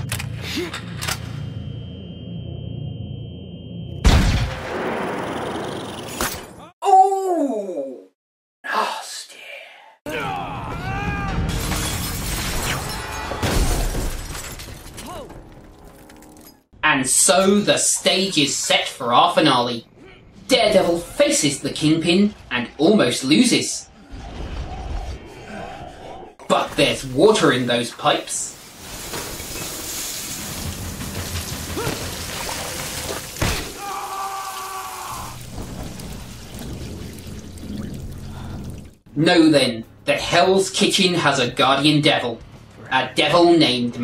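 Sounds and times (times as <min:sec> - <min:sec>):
glass window shattering: 0:11.5 - 0:16.6
water spraying from burst pipes: 0:28.5 - 0:33.4.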